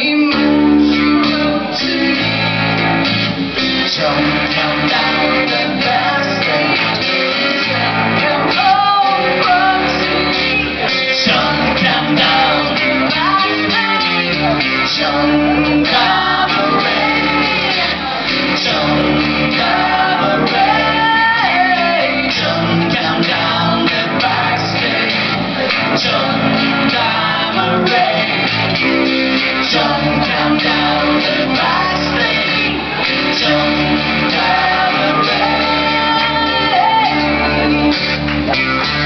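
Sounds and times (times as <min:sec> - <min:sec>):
electric bass: 0:00.0 - 0:39.0
strummed acoustic guitar: 0:00.0 - 0:39.0
woman singing: 0:04.4 - 0:10.6, 0:11.2 - 0:14.7, 0:15.4 - 0:18.2, 0:19.0 - 0:25.0, 0:33.4 - 0:37.7.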